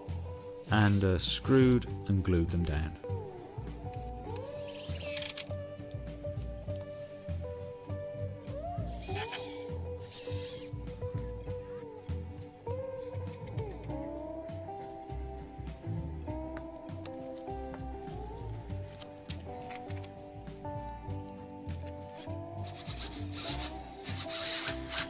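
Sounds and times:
background music: 0.0 - 25.0
cordless drill driving screws: 9.1 - 10.7, 22.2 - 25.0.

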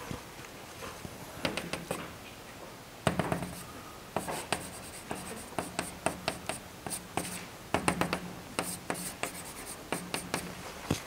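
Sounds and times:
chalk tapping and scratching on blackboard: 1.4 - 2.1, 3.1 - 10.6.

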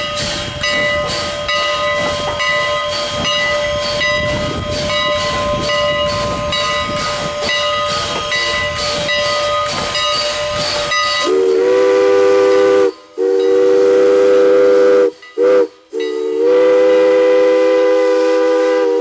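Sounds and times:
locomotive chime whistle blasts: 0.0 - 19.0
steam hiss: 0.0 - 19.0
steam locomotive chuffing: 0.0 - 19.0.

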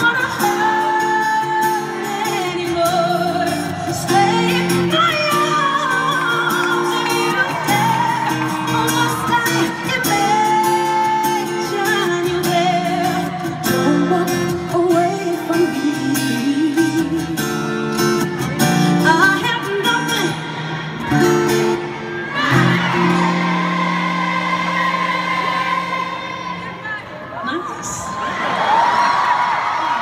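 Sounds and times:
woman singing pop vocals: 0.0 - 18.0, 18.8 - 20.8.

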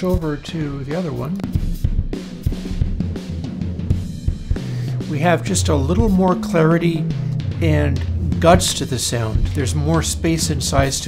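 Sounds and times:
drum and bass music: 0.0 - 11.0.

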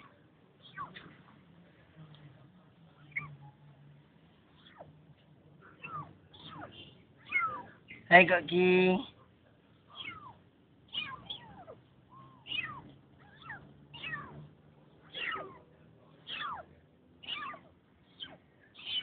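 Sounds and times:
kittens mewing: 0.0 - 1.3, 3.0 - 3.7, 4.5 - 5.0, 5.6 - 8.1, 9.8 - 19.0.

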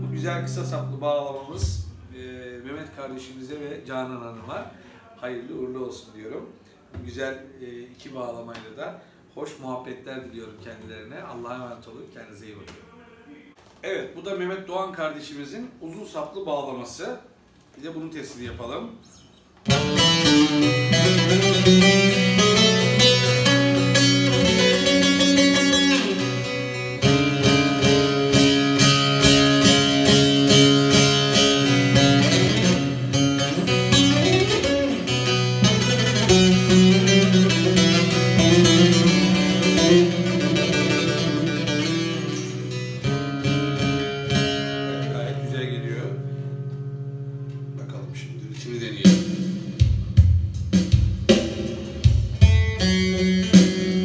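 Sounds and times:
plucked and strummed saz: 19.7 - 47.8, 52.3 - 54.0.

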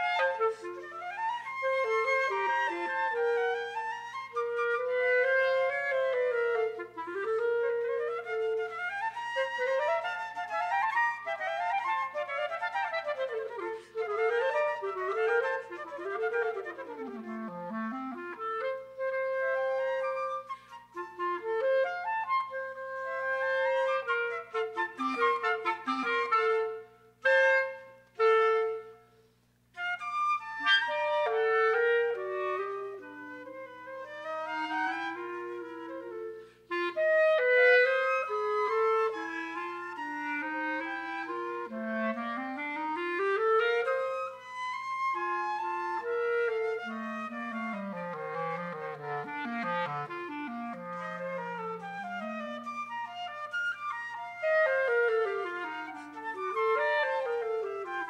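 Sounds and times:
clarinet: 0.0 - 58.0
flute: 0.0 - 58.0.

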